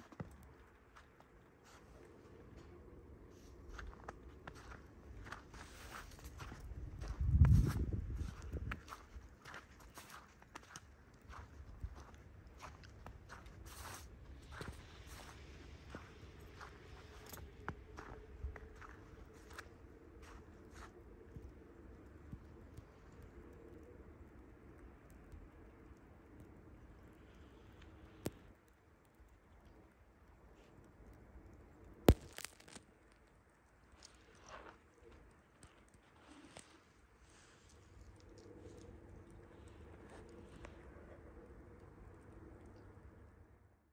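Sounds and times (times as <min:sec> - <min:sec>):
footsteps in snow: 0:01.0 - 0:02.2, 0:03.3 - 0:20.9.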